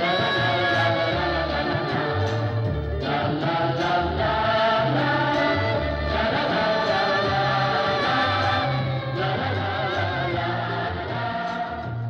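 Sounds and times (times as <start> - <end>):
pulsing bass line: 0.0 - 12.0
voices singing held notes: 0.0 - 12.0.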